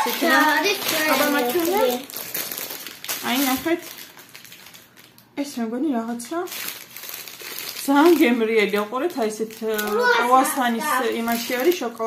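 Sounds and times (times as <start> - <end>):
plastic wrappers crinkling: 0.0 - 12.0.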